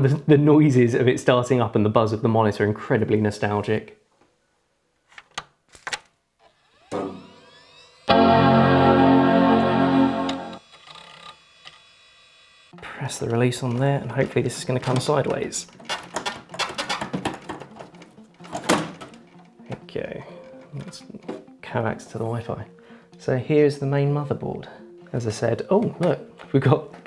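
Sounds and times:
plastic and metal clicks and rattles: 13.7 - 19.2.

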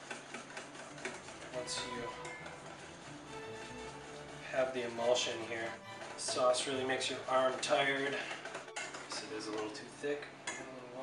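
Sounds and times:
wire whisk ticking against bowl: 0.0 - 9.8
quiet background music: 0.0 - 11.0.

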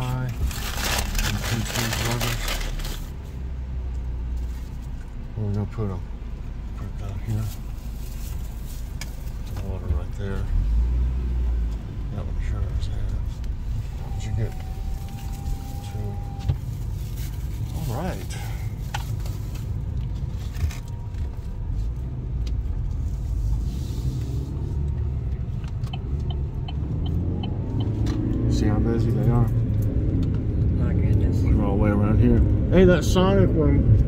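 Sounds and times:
car engine and road rumble: 0.0 - 34.0.

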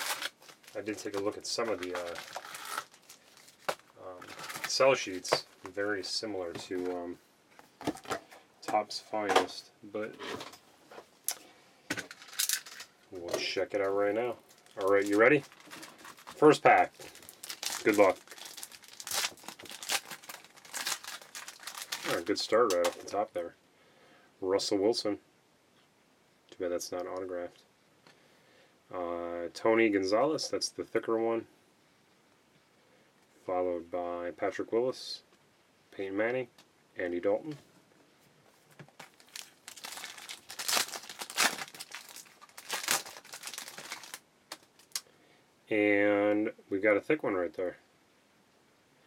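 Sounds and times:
foil wrapper tearing and crinkling: 0.0 - 4.8, 12.2 - 12.9, 14.5 - 23.1, 39.0 - 45.0.

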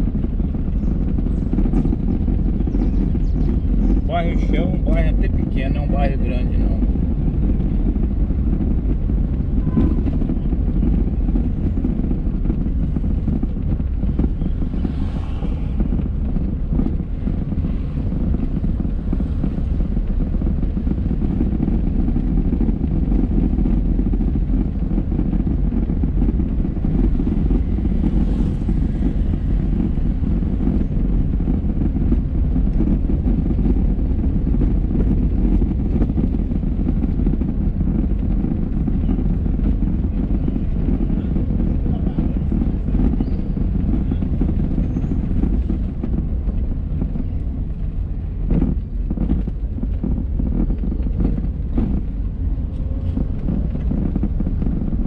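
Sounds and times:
car engine and tyre noise: 0.0 - 55.0.

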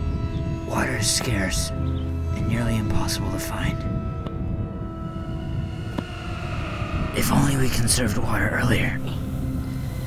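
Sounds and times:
faint steady drone: 0.0 - 10.0
wind buffeting microphone: 0.0 - 10.0.

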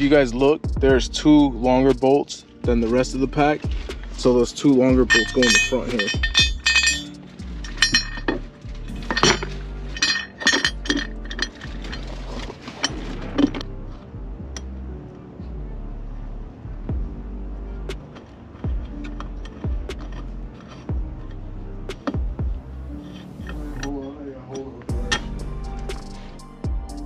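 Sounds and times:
background music: 0.0 - 27.0
bolts clinking on metal plate: 5.0 - 12.2.

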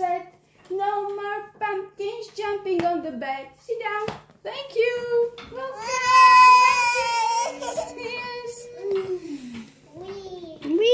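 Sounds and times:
child squealing: 5.8 - 7.7.

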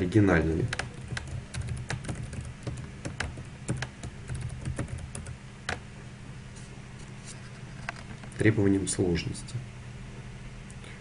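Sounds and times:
low steady hum: 0.0 - 11.0
computer keyboard typing: 0.6 - 5.8.

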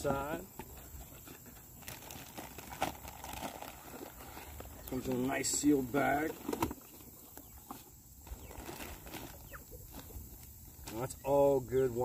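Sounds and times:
plastic bag rustling: 1.2 - 7.0, 7.7 - 11.1
faint bird chirp: 6.8 - 10.3.

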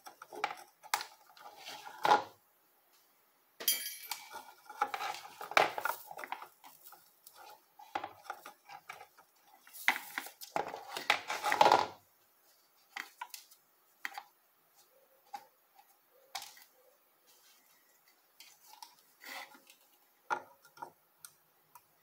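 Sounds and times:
metal tools clinking on circuit board: 3.6 - 4.3.

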